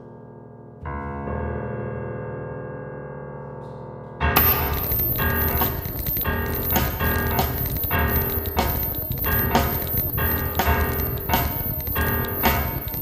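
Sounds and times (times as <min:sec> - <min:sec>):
sustained piano tones: 0:04.4 - 0:13.0.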